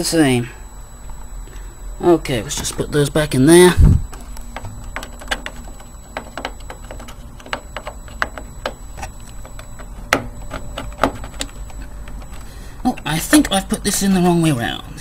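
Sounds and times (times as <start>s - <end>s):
plastic clicks of memory modules: 4.1s - 13.6s.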